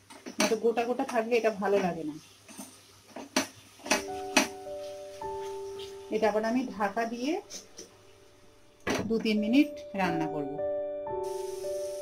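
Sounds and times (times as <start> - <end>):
background music: 3.9 - 12.0.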